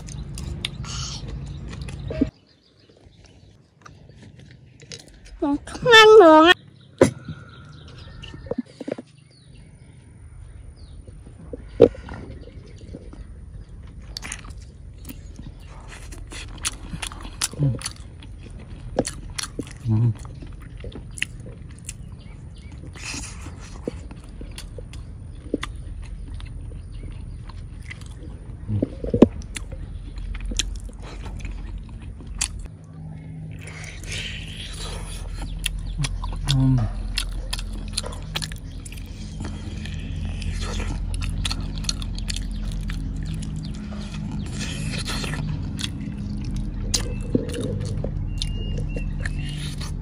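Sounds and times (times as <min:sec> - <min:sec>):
person chewing with wet smacking: 0:00.0 - 0:05.4, 0:11.1 - 0:32.8, 0:33.4 - 0:50.0
person humming murmurs: 0:36.4 - 0:37.0.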